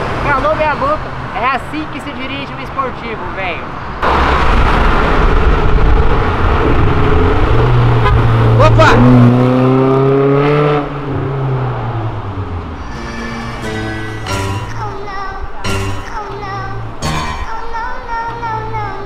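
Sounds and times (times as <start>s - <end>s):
car accelerating hard: 4.0s - 12.8s.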